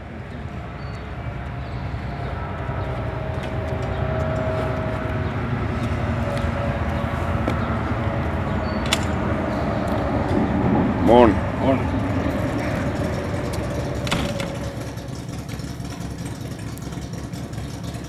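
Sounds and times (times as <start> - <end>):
vehicle engine rumble: 0.0 - 18.0.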